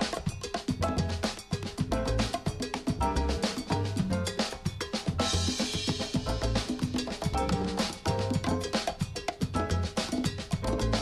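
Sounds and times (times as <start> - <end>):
drum and cowbell strokes: 0.0 - 11.0
salsa band playing: 0.0 - 11.0.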